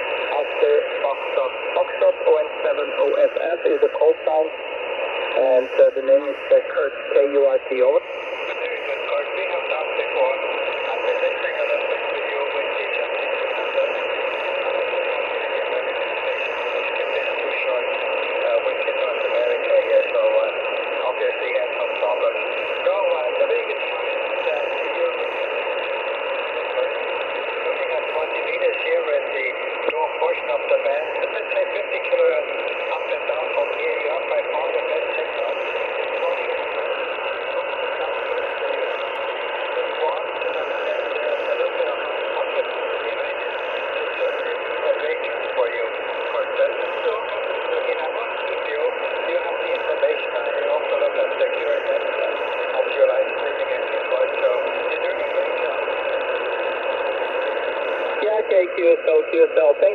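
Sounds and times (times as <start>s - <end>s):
garbled radio voice: 0.0s - 59.9s
radio static: 0.0s - 59.9s.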